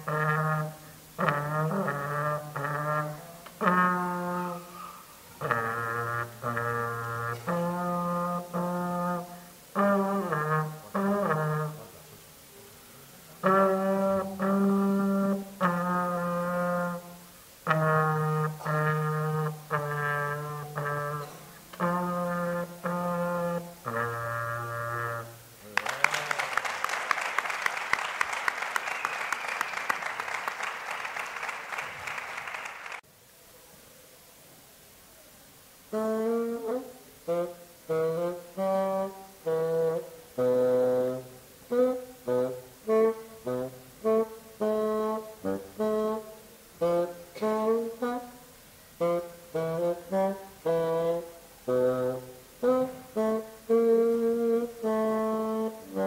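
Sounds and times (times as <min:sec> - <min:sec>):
trombone melody: 0:00.0 - 0:26.6, 0:35.8 - 0:56.0
audience clapping: 0:25.7 - 0:33.0.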